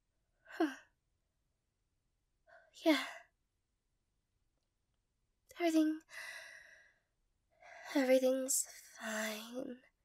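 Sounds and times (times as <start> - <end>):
woman's voice: 5.5 - 6.1, 7.9 - 9.9.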